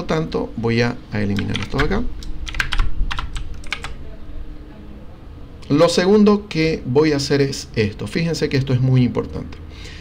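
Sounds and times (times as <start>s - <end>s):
computer keyboard keystrokes: 1.3s - 4.0s.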